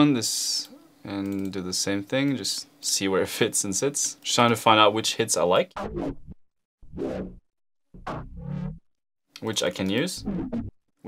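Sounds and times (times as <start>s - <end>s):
synth bass hits: 5.8s - 8.9s, 10.2s - 10.8s.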